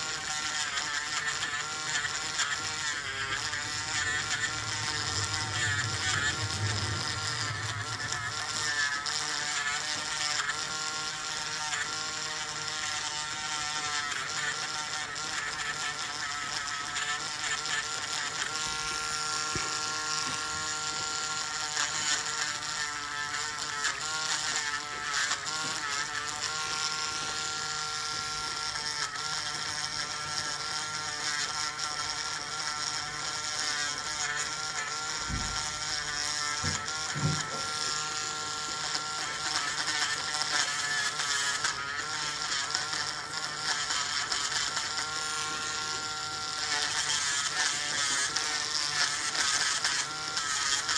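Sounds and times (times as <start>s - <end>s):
electric nail drill whining: 0.0s - 50.9s.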